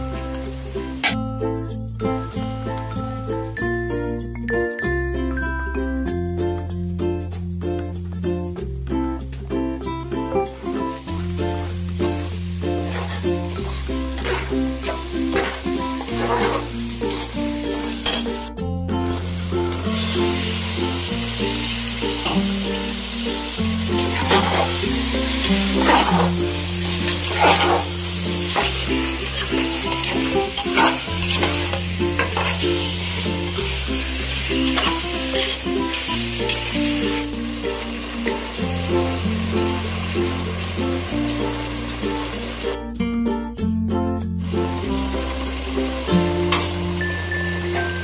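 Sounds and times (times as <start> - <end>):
food sizzling in a pan: 0.0 - 1.2, 10.2 - 42.8, 44.4 - 48.0
background music: 0.0 - 48.0
stirring scrape in a pan: 12.8 - 13.3, 14.1 - 17.3, 24.0 - 24.8, 25.5 - 33.2.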